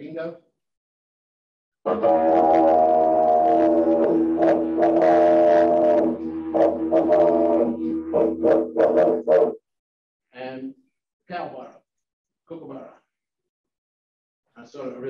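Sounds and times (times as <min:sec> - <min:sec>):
didgeridoo drone and pulses: 0:01.9 - 0:09.6.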